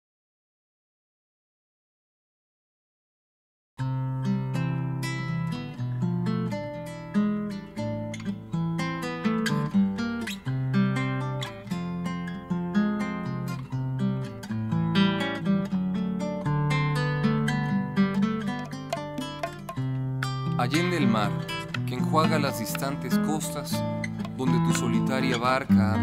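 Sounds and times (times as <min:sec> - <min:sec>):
acoustic guitar plucking: 0:03.8 - 0:26.0.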